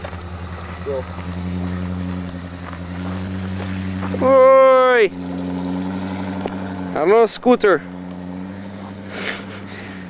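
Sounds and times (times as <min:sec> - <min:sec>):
engine running steadily: 0:00.0 - 0:10.0.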